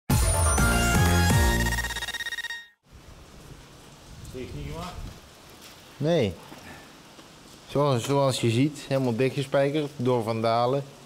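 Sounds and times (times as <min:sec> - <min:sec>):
electronic ident jingle: 0:00.1 - 0:02.8
faint background noise: 0:02.9 - 0:11.0.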